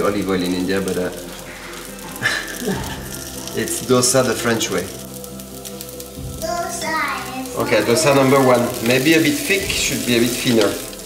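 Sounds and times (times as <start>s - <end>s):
man laughing: 2.2s - 3.2s.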